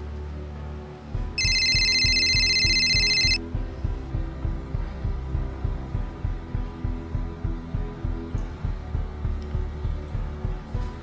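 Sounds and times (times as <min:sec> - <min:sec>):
background music with pulsing beat: 0:01.2 - 0:11.0
phone ringtone high trill: 0:01.4 - 0:03.4.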